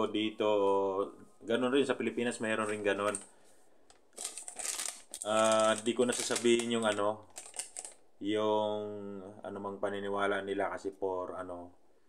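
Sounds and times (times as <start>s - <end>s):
crinkling rustle: 2.4s - 8.0s.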